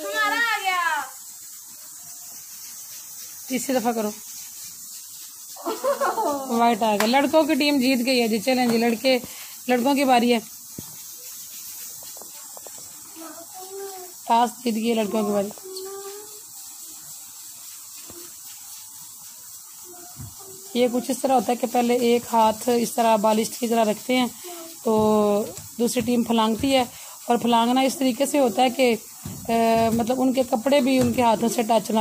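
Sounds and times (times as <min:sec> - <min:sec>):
faint background hiss: 0:00.0 - 0:32.0
person speaking: 0:20.0 - 0:32.0.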